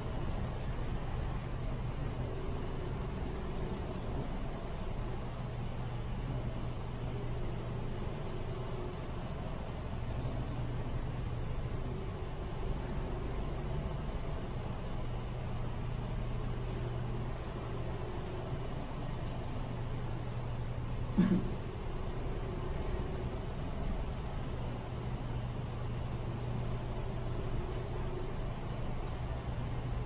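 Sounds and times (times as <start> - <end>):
ventilation fans humming: 0.0 - 30.0.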